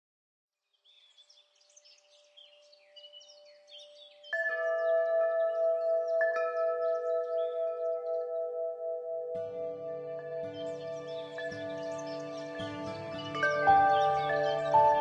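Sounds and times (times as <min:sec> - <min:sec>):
faint birdsong chirps: 0:00.6 - 0:15.0.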